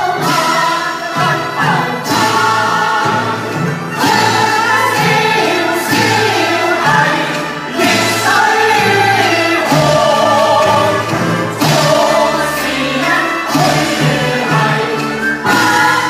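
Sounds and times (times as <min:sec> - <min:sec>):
string orchestra: 0:00.0 - 0:16.0
two men singing opera duet: 0:00.0 - 0:16.0.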